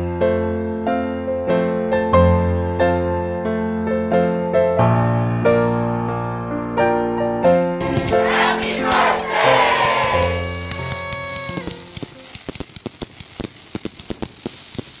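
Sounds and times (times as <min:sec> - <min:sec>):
fireworks bangs and crackles: 0:07.8 - 0:15.0.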